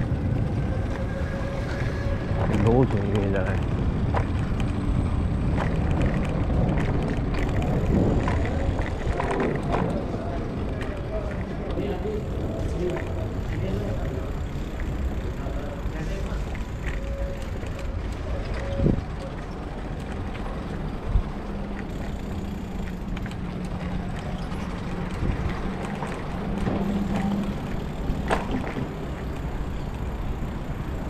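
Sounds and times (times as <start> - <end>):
bicycle rumbling over stone paving: 0.0 - 29.9
bike rattles and clicks: 0.0 - 31.0.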